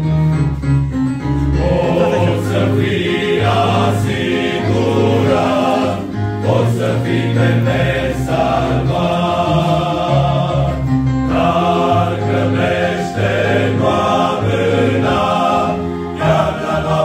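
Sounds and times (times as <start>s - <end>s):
men's choir singing: 1.4s - 17.0s.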